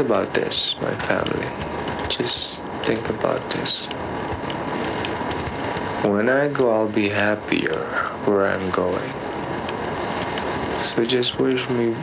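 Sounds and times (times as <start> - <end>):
cassette tape hiss and rumble: 0.0 - 12.0
faint steady tone: 0.0 - 12.0.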